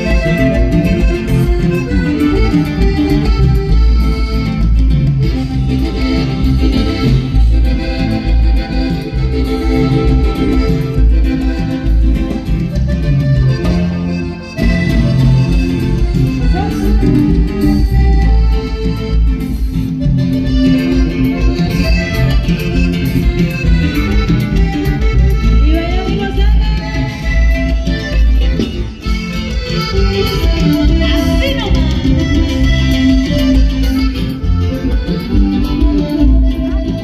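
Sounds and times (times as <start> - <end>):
accordion: 0.0 - 37.0
live band playing dance music: 0.0 - 37.0.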